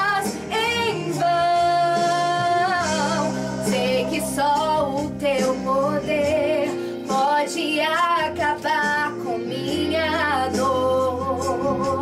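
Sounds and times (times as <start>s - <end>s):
woman singing ballad: 0.0s - 12.0s.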